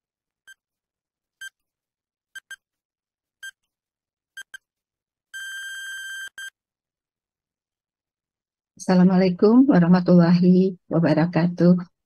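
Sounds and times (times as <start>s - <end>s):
short electronic timer beeps: 2.4s - 2.6s
long steady beep: 5.4s - 6.6s.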